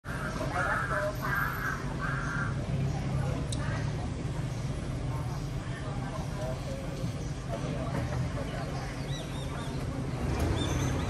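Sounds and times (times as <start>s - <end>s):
crow cawing: 0.1s - 2.6s.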